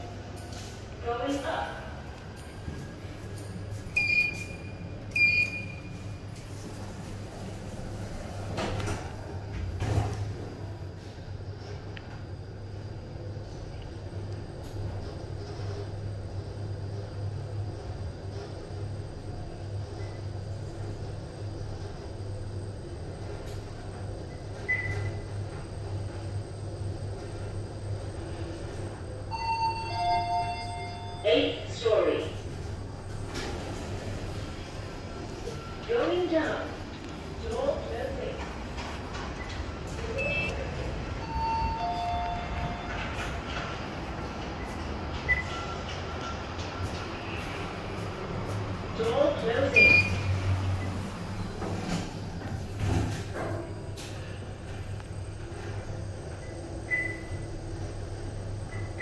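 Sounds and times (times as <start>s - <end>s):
low lobby hum: 0.0s - 59.0s
high beep: 41.2s - 43.0s.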